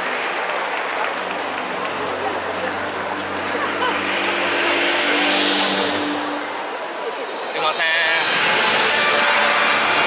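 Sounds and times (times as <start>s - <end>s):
loud music over stadium speakers: 1.3s - 10.0s.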